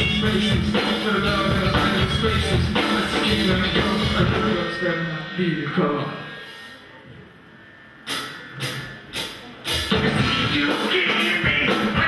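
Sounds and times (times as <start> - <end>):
rock band accented hits: 0.0 - 6.6, 8.0 - 12.0.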